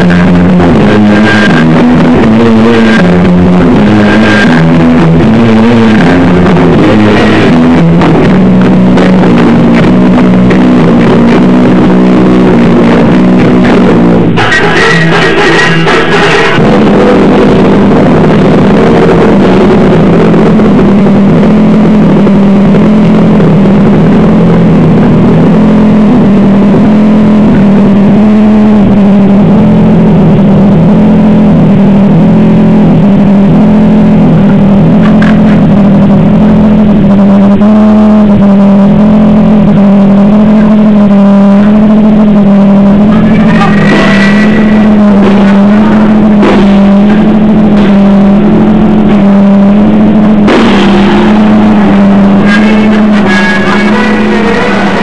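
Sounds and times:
distorted bass droning riff: 0:00.0 - 0:55.0
sharp hits: 0:41.0 - 0:55.0.

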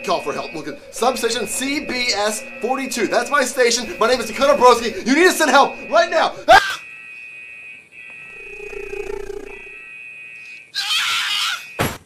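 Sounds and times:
high electronic whine: 0:00.0 - 0:10.2
low animal-like growl: 0:08.4 - 0:09.8.

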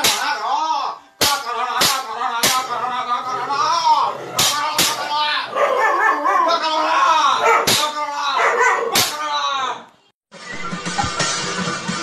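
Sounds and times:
sharp smack: 0:00.0 - 0:00.3, 0:01.2 - 0:02.6, 0:04.4 - 0:05.0, 0:07.7 - 0:08.0, 0:09.0 - 0:09.2
person's voice: 0:00.0 - 0:05.6
dog barking and yipping: 0:05.5 - 0:06.6, 0:07.4 - 0:07.8, 0:08.4 - 0:09.0.

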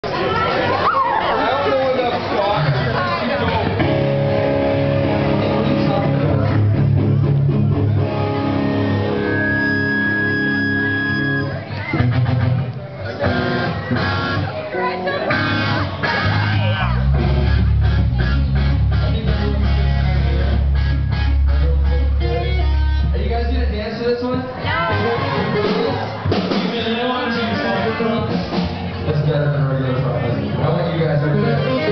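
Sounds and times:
live rock band playing: 0:02.7 - 0:31.9
electric guitar chord ringing: 0:03.8 - 0:12.5, 0:13.3 - 0:23.2.

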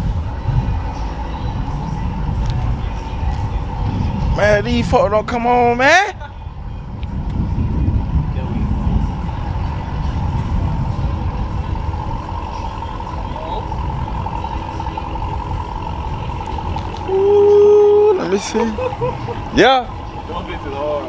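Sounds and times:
motor vehicle rumble: 0:00.0 - 0:21.0
steady high whine: 0:00.0 - 0:21.0.

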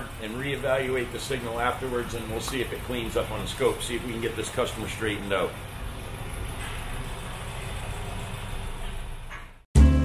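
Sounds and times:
car engine idling: 0:00.0 - 0:09.6.

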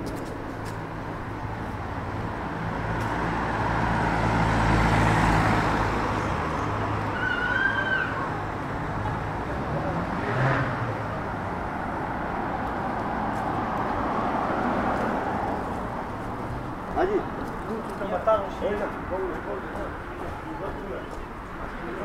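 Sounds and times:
street traffic noise: 0:00.0 - 0:22.0
car driving past: 0:03.2 - 0:08.2, 0:09.0 - 0:16.1.

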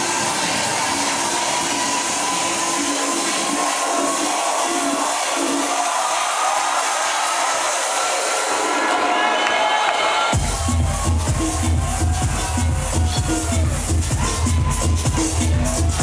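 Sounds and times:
house music: 0:00.0 - 0:16.0.

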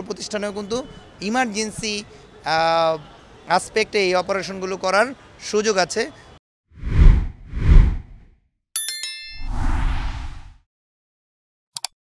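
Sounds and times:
whoosh: 0:06.8 - 0:08.3, 0:09.4 - 0:10.6
bright bell-like ding: 0:08.8 - 0:09.5.

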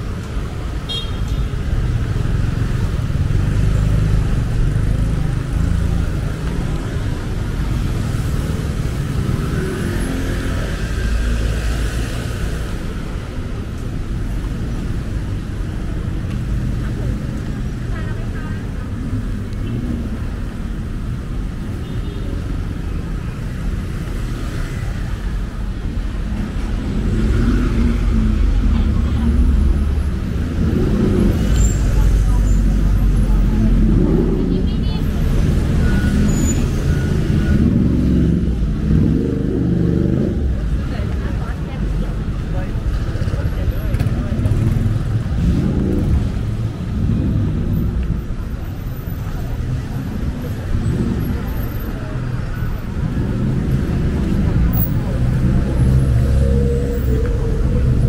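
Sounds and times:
street traffic passing: 0:00.0 - 0:58.0
passers-by talking: 0:01.7 - 0:58.0.

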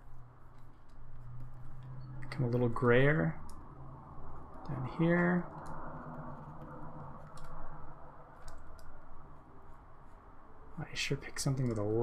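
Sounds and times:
low room hum: 0:00.0 - 0:12.0
computer keys clicking: 0:04.4 - 0:07.8, 0:08.4 - 0:09.0, 0:11.4 - 0:12.0.

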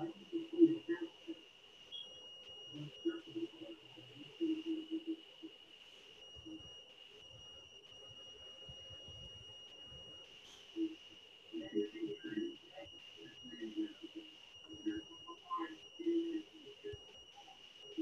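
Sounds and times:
high-pitched electronic whine: 0:00.0 - 0:18.0.

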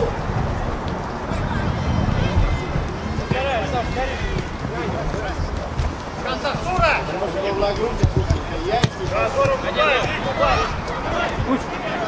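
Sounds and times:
footballers shouting: 0:00.0 - 0:12.0
dull thumps of ball: 0:02.7 - 0:12.0
sharp kick of ball: 0:08.8 - 0:10.2.

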